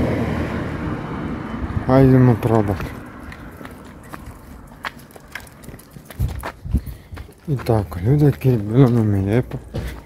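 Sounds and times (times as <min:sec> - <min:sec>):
footsteps on pavement: 0:02.4 - 0:10.0.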